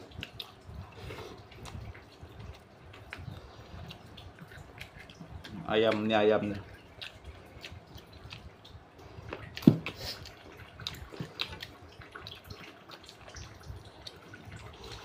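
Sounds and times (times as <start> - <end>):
mouth and lip smacks: 0.0 - 15.0
wet chewing: 0.0 - 15.0.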